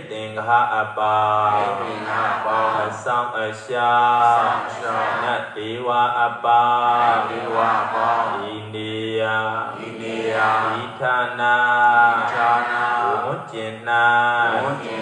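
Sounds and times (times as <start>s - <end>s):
man chanting over loudspeaker: 0.0s - 15.0s.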